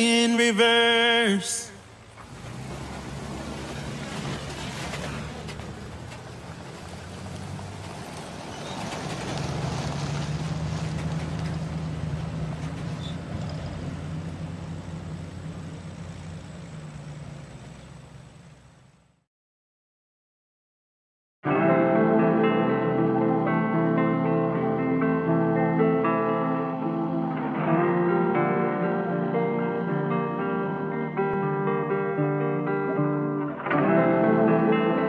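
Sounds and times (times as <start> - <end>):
vehicle engine humming: 0.0 - 19.2.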